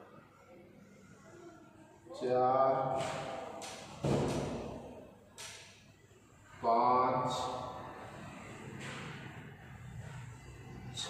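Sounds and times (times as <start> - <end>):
man talking: 2.1 - 3.0, 6.6 - 7.8
thump: 4.0 - 4.7.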